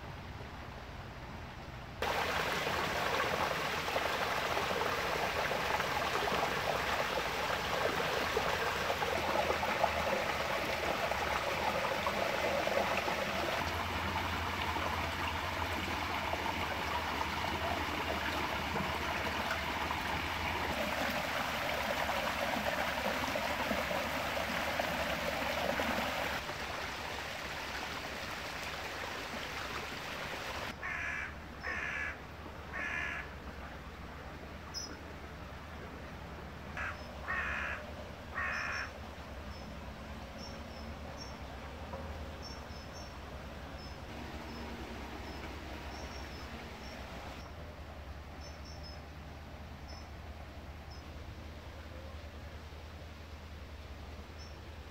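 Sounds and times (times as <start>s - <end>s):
brook water splashing over stones: 2.0s - 32.1s, 35.3s - 47.6s
crow cawing: 30.8s - 33.3s, 36.8s - 38.9s.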